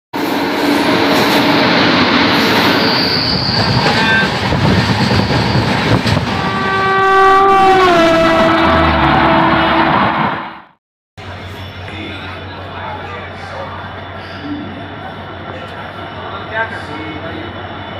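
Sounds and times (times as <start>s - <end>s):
train running noise: 0.2s - 7.0s, 7.7s - 17.9s
locomotive air horn: 6.3s - 10.6s.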